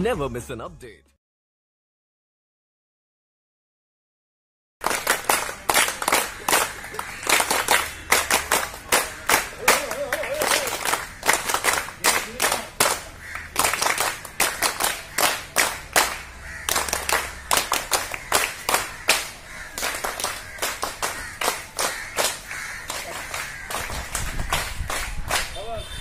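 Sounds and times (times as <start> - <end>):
people clapping: 4.8 - 25.9.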